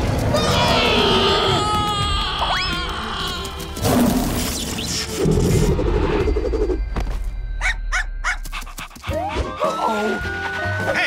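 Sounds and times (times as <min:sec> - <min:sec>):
dog yelping: 0:07.6 - 0:08.4.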